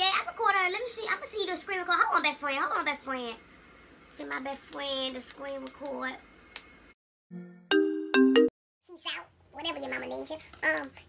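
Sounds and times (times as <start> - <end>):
phone ringtone chime: 7.7 - 8.5.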